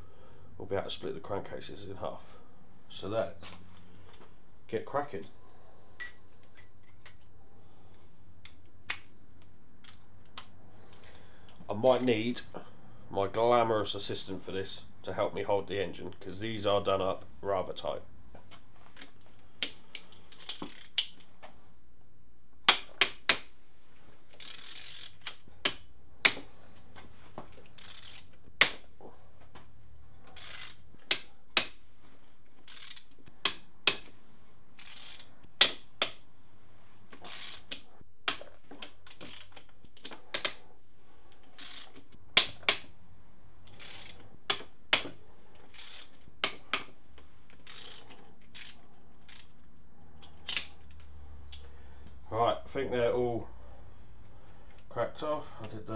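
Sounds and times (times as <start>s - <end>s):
ratchet wrench clicking: 20.0s - 21.2s, 24.4s - 25.4s, 27.8s - 28.3s, 30.4s - 30.8s, 32.6s - 33.1s, 34.8s - 36.2s, 37.2s - 37.8s, 39.1s - 39.6s, 41.6s - 42.0s, 43.7s - 44.6s, 45.7s - 46.6s, 47.6s - 49.5s.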